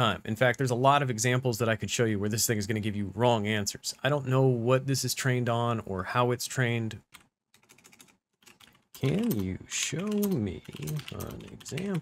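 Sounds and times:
typing on computer keyboard: 0:07.2 - 0:12.0.

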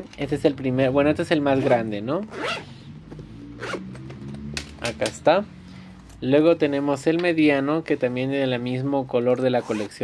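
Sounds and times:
zipper rasping: 0:01.6 - 0:02.9, 0:03.6 - 0:04.1, 0:09.5 - 0:10.0.

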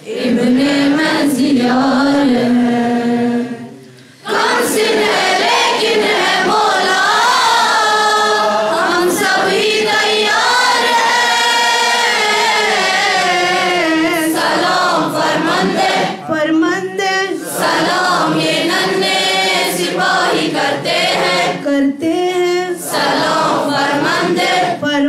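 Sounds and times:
congregation singing in unison: 0:00.0 - 0:25.0.

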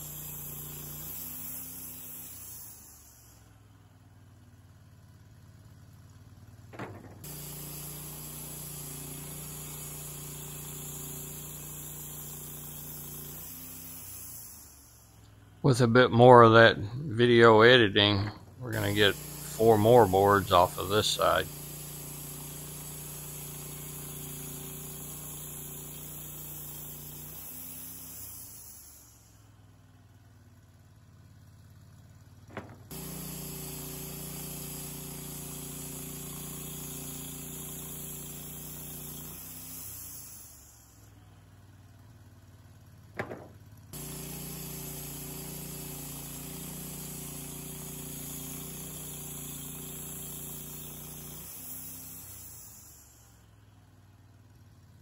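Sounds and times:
band sawmill sawing log: 0:00.0 - 0:03.2, 0:15.7 - 0:29.2, 0:32.5 - 0:41.0, 0:43.3 - 0:53.3.

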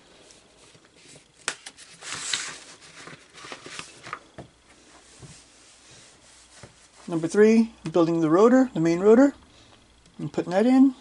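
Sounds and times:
paper pages rustling: 0:00.2 - 0:07.3.

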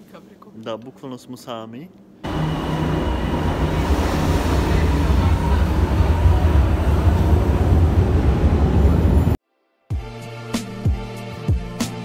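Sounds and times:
metro train rumbling: 0:02.2 - 0:09.4.

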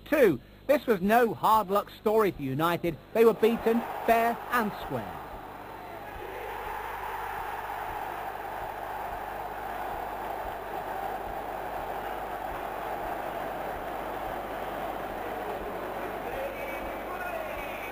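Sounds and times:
stadium crowd cheering: 0:03.2 - 0:17.9.

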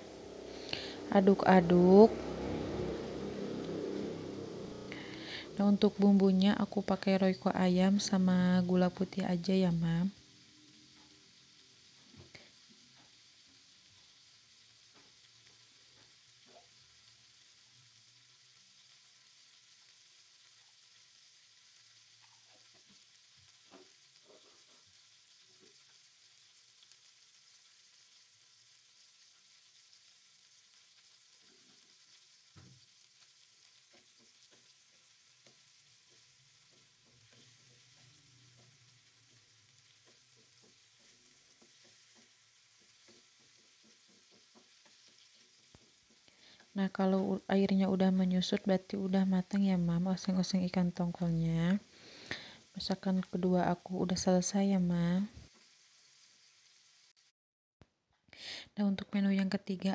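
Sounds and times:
food simmering in frying pan: 0:00.0 - 0:57.3.

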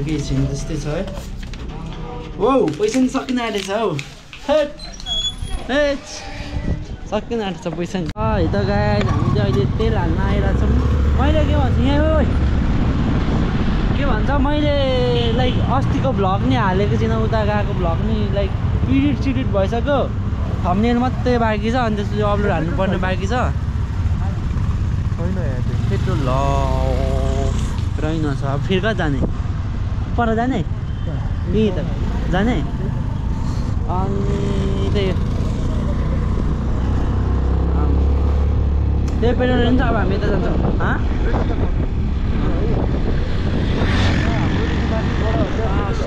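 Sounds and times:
wind on microphone: 0:05.4 - 0:07.3, 0:39.5 - 0:46.0
motorcycle engine rumbling: 0:08.2 - 0:46.0.

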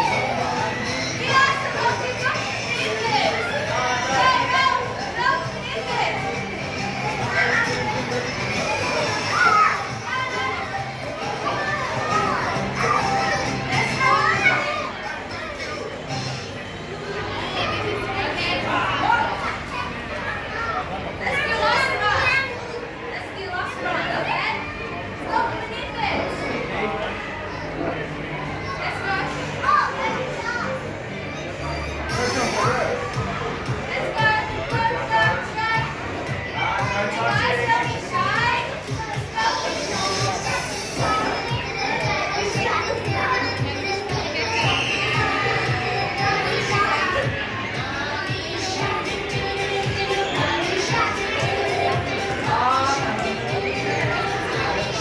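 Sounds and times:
background music: 0:00.0 - 0:19.2, 0:26.6 - 0:55.0
young children shouting and chattering: 0:00.0 - 0:55.0
children shrieking excitedly: 0:08.8 - 0:10.6.

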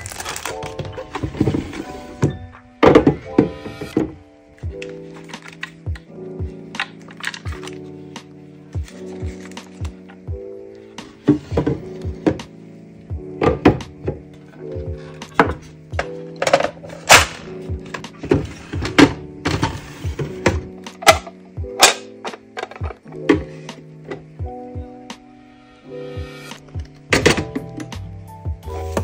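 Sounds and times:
soft background music: 0:00.0 - 0:29.0
plastic drawer knocks and clunks: 0:00.7 - 0:04.2, 0:11.2 - 0:12.5, 0:13.4 - 0:24.4, 0:27.1 - 0:27.9.

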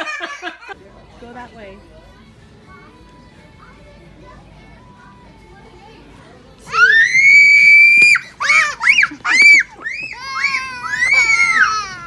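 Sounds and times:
young child screaming: 0:06.7 - 0:12.0.

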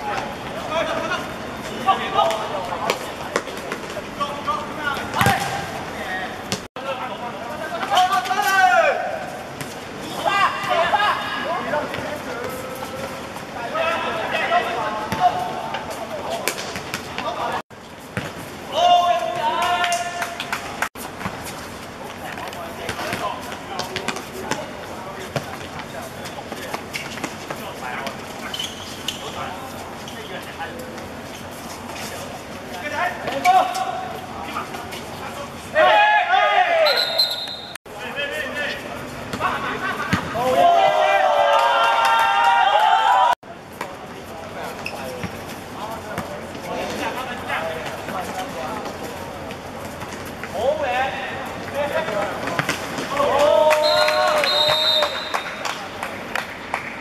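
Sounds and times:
ball being kicked: 0:05.1 - 0:05.7
players shouting: 0:35.7 - 0:37.6, 0:39.4 - 0:43.4, 0:51.7 - 0:55.5
high steady whistle: 0:36.8 - 0:37.8, 0:53.8 - 0:55.6.

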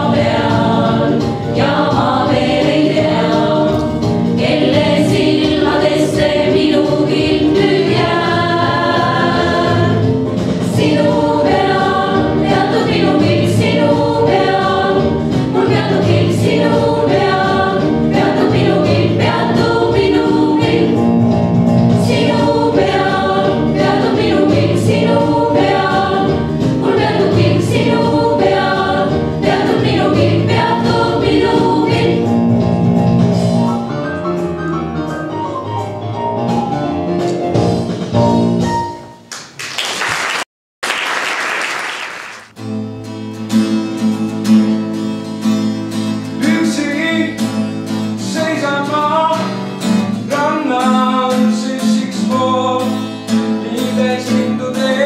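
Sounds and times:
women's vocal ensemble singing: 0:00.0 - 0:21.2, 0:22.0 - 0:32.4.

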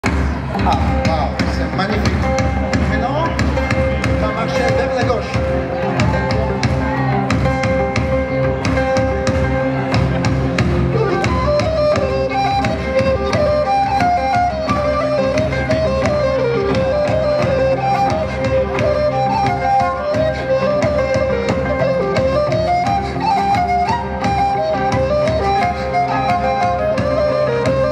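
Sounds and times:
driving beat: 0:00.0 - 0:27.9
fiddle: 0:00.4 - 0:27.9
wind instrument playing dance tune: 0:10.6 - 0:27.9.

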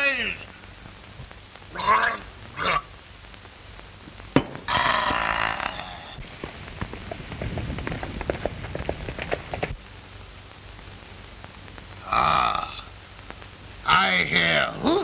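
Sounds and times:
crackly sputtering noises: 0:00.0 - 0:15.0
glass set down knock: 0:04.4 - 0:04.6.

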